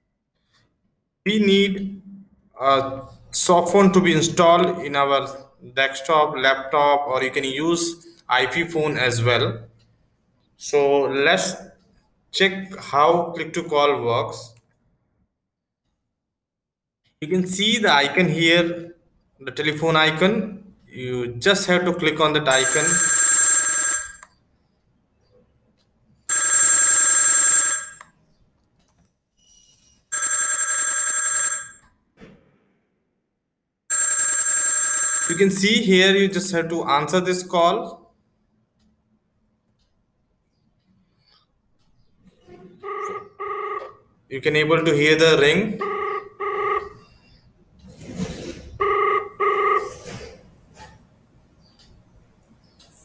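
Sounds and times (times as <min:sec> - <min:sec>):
electronic phone ringtone: 0:22.5 - 0:24.2, 0:26.3 - 0:28.0, 0:30.1 - 0:31.8, 0:33.9 - 0:35.5, 0:42.9 - 0:44.0, 0:45.8 - 0:47.1, 0:48.8 - 0:49.9.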